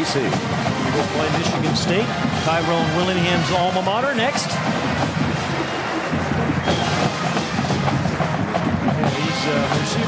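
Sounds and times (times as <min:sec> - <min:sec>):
crowd noise: 0:00.0 - 0:10.0
marching band playing: 0:00.0 - 0:10.0.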